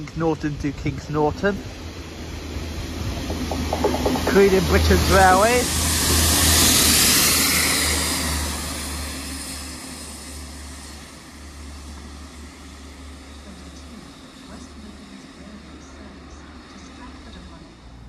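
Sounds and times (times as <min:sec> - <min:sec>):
train rumble and hiss: 0:00.0 - 0:18.0.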